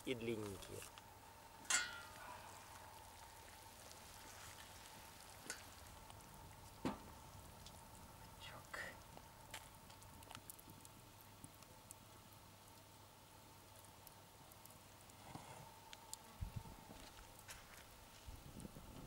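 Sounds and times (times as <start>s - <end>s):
faint sizzle: 0.0s - 19.0s
metal lid clanking: 1.7s - 2.1s.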